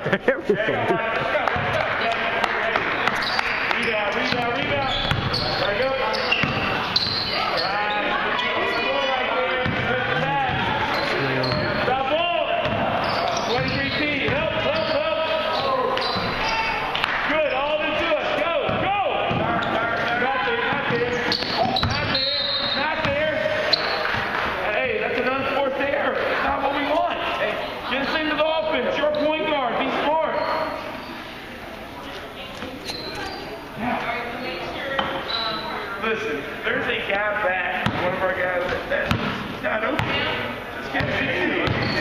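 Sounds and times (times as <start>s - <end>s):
indistinct voices: 0.2s - 24.2s
basketball bouncing on hardwood floor: 4.3s - 5.4s, 37.8s - 38.1s, 39.0s - 39.4s, 40.0s - 40.3s, 41.0s - 42.0s.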